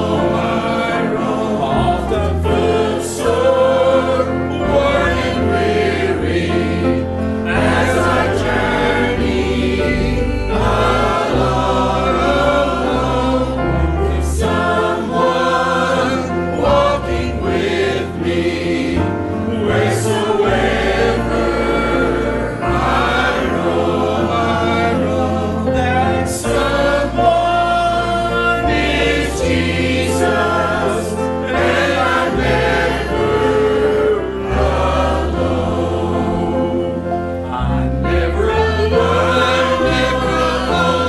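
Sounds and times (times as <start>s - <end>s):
instrumental accompaniment with bass: 0.0s - 41.0s
mixed choir singing a hymn: 0.0s - 41.0s.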